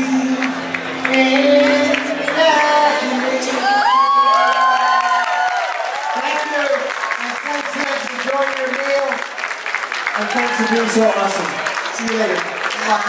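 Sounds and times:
audience applauding: 0.0 - 13.0.

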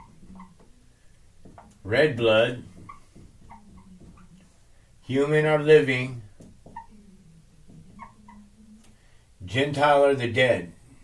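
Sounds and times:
marker squeaking on whiteboard: 0.0 - 0.8, 1.4 - 8.7.

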